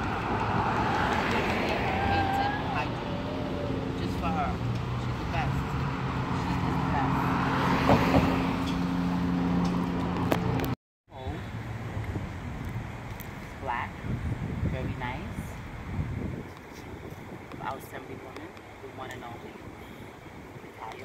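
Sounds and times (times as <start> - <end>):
cars passing: 0.0 - 21.0.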